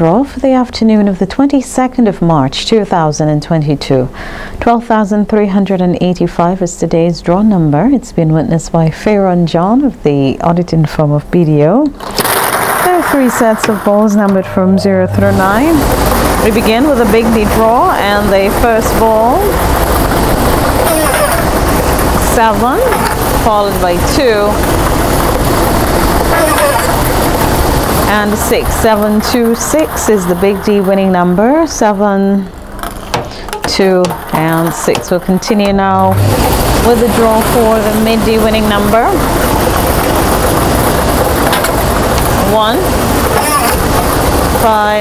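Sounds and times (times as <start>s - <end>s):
lottery machine air blowers: 12.0s - 45.0s.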